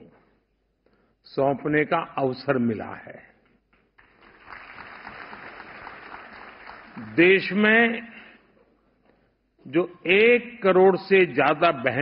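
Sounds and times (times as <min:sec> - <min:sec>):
audience applauding: 0:04.0 - 0:07.3.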